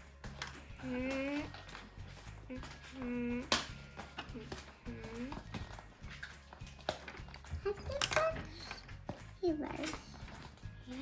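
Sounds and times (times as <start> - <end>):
plastic toys clicking and tapping: 0.0 - 11.0
person humming: 0.8 - 1.5, 2.5 - 3.6.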